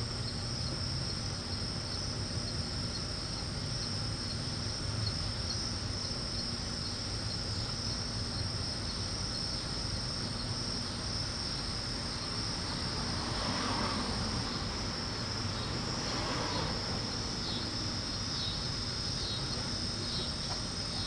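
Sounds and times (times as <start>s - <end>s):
crickets chirping: 0.0s - 21.0s
low steady hum: 0.0s - 21.0s.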